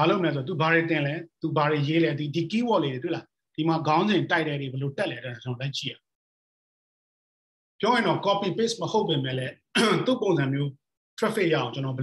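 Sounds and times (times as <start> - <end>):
man speaking: 7.8 - 12.0.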